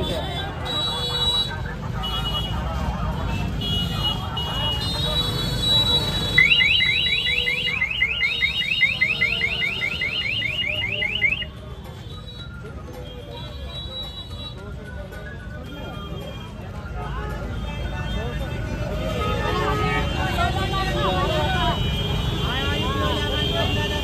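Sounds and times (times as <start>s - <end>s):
street market hubbub: 0.0s - 24.0s.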